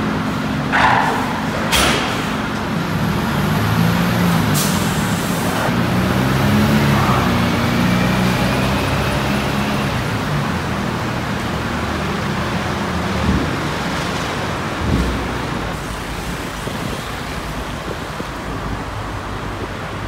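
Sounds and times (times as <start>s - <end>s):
heavy vehicle engines running: 0.0s - 20.0s
steady noisy background: 0.0s - 20.0s.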